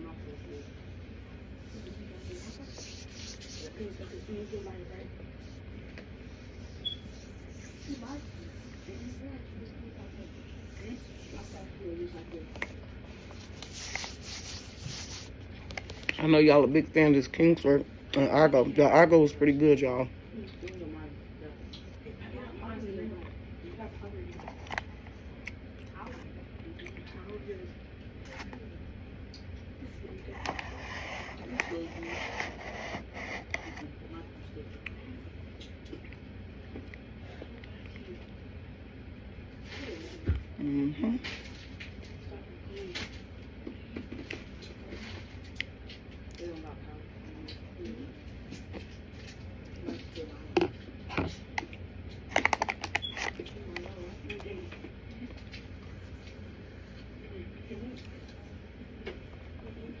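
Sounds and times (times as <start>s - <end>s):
paper crinkling: 12.6s - 16.1s
plastic spoon scraping corn starch: 30.3s - 33.8s.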